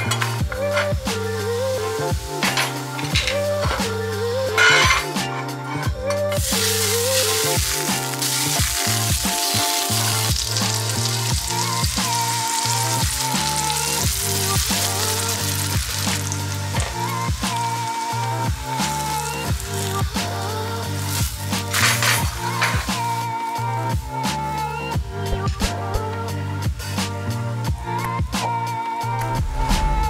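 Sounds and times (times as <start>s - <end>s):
background music with a beat: 0.0s - 30.0s
batter sizzling in frying pan: 6.4s - 23.7s.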